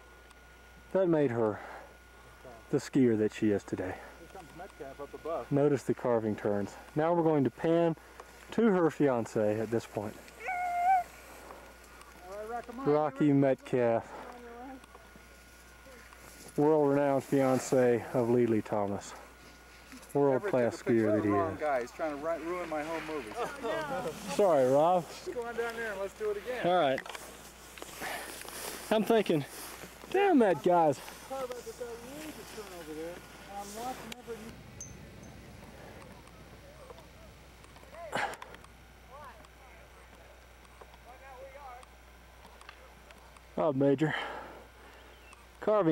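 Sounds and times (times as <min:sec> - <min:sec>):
man talking: 0:02.4 - 0:10.2, 0:12.2 - 0:14.3, 0:16.5 - 0:19.3, 0:20.1 - 0:27.2, 0:28.0 - 0:34.6, 0:45.6 - 0:45.9.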